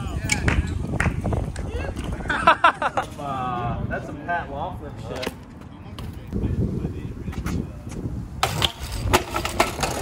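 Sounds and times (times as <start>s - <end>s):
bike crashing onto concrete: 8.4s - 10.0s.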